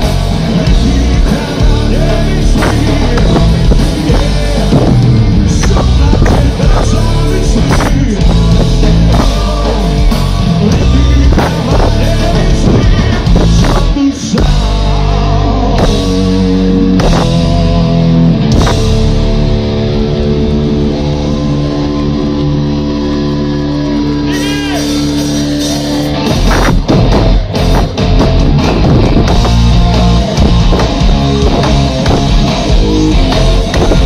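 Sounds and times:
electric guitar sustained notes: 0.0 - 34.0
live rock band playing: 0.0 - 34.0.

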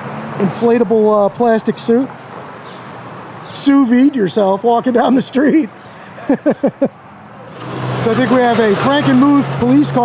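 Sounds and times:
man laughing: 6.0 - 7.0
vehicle engine approaching: 7.1 - 10.0.

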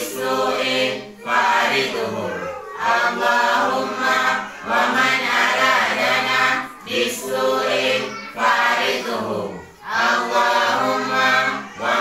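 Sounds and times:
voices chanting together: 0.0 - 12.0.

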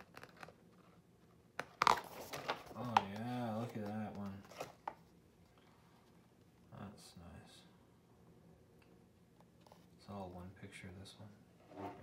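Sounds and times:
book page turning: 0.0 - 0.8, 1.8 - 5.0.

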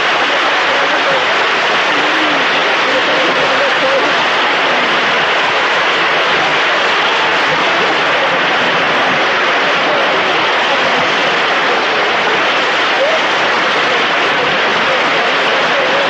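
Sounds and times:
audience applauding: 0.0 - 16.0.

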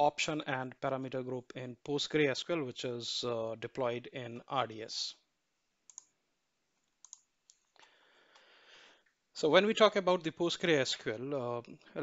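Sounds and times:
soft hiss: 1.3 - 12.0
computer mouse clicks: 5.9 - 6.1, 6.8 - 8.5.

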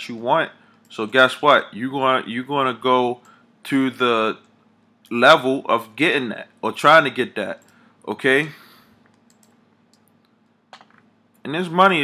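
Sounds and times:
computer keys clicking: 9.0 - 11.5.

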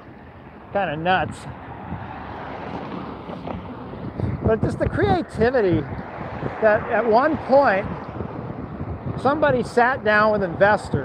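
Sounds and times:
road traffic rushing: 0.0 - 11.0.

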